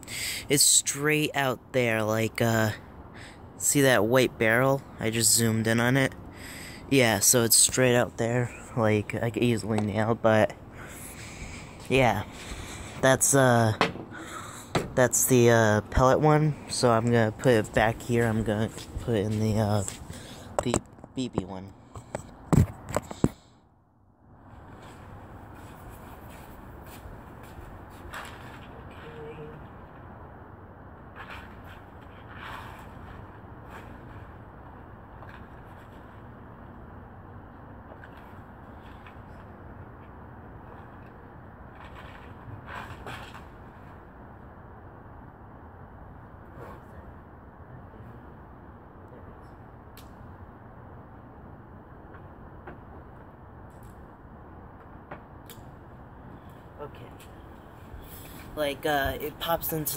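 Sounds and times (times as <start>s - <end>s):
steady outdoor hiss: 0.0s - 59.9s.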